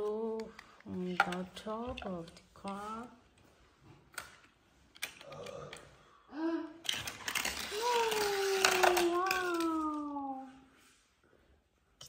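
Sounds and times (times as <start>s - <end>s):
toy car rattling down plastic ramp: 6.8s - 10.0s
child holding falling vocal tone: 7.7s - 10.6s.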